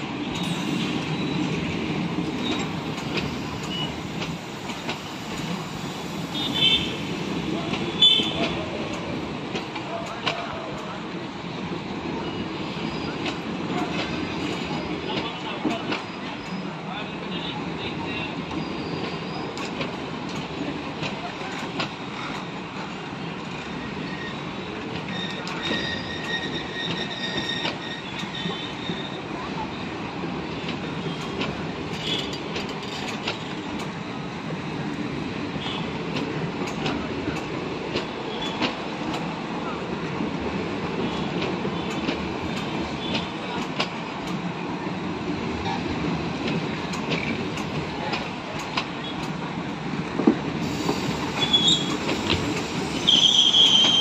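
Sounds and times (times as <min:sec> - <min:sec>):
train wheels rumbling: 0:00.0 - 0:54.0
high squeal: 0:25.1 - 0:29.2, 0:52.8 - 0:54.0.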